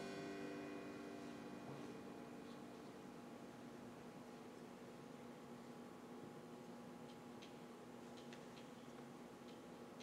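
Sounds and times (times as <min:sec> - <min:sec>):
steady low hum: 0:00.0 - 0:08.2
faint small ticks: 0:07.0 - 0:10.0.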